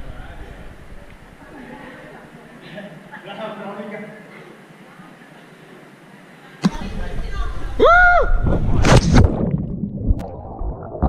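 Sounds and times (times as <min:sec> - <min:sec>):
loud splash into water: 0:08.3 - 0:11.0.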